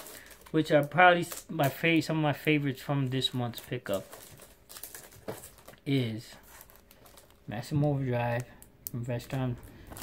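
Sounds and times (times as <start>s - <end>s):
plastic packaging crinkling: 0.0s - 2.2s, 3.1s - 10.0s.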